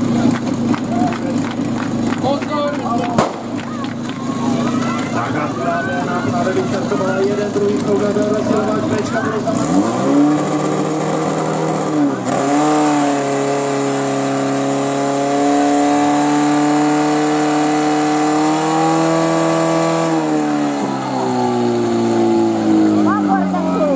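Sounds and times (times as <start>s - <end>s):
pump engine running at high revs: 0.0s - 23.9s.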